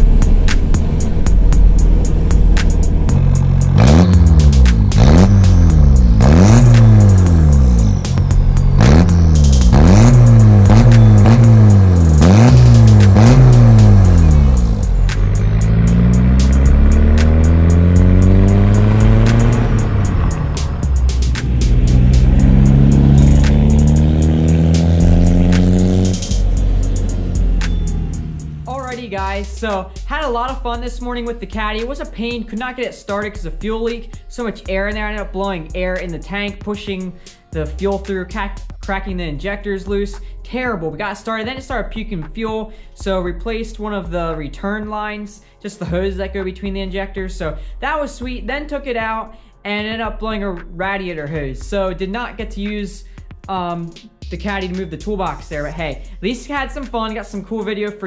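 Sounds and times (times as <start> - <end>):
diesel engine revving: 0.0 - 31.4
background music with steady beat: 0.0 - 58.0.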